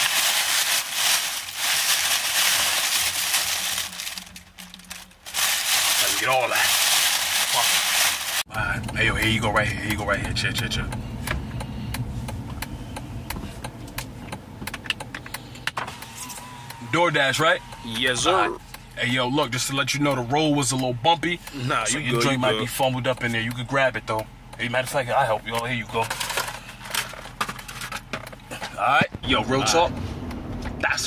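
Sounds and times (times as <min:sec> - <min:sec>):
crackling rustling handling noise: 0:00.0 - 0:08.5, 0:25.5 - 0:28.6
car rumble inside cabin: 0:00.0 - 0:31.0
sharp clicks and ticks: 0:08.6 - 0:15.8.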